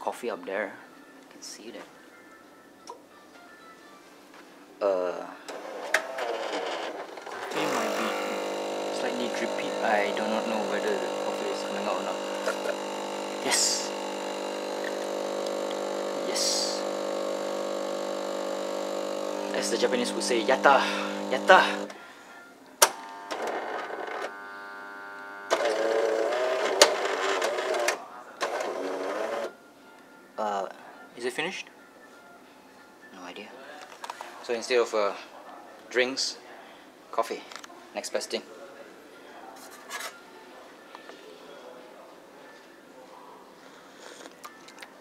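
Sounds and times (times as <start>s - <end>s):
coffee machine motor humming: 5.5s - 22.0s, 22.8s - 29.5s.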